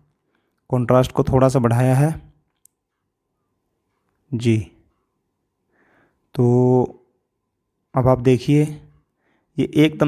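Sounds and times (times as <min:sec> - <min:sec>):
man speaking: 0:00.7 - 0:02.4, 0:04.3 - 0:04.9, 0:06.3 - 0:07.1, 0:07.9 - 0:10.0.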